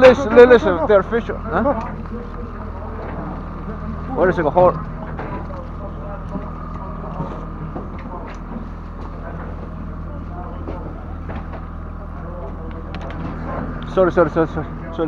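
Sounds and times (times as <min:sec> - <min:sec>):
boat engine running: 0:00.0 - 0:15.0.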